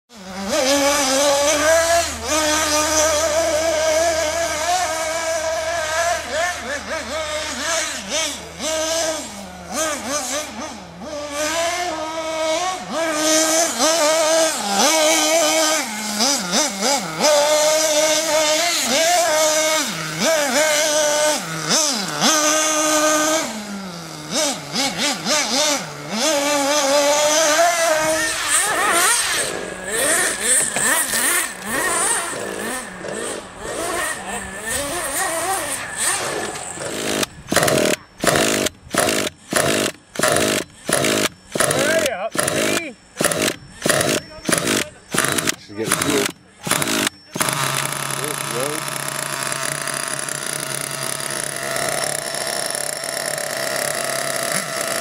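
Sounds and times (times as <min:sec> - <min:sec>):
rc car engines revving: 0:00.1 - 0:55.0
cordless drill bursts: 0:13.0 - 0:55.0.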